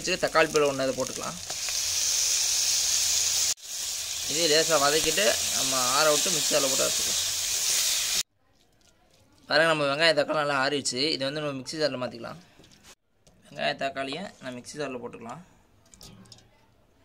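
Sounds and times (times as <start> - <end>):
onions sizzling in hot oil: 0.0 - 8.3.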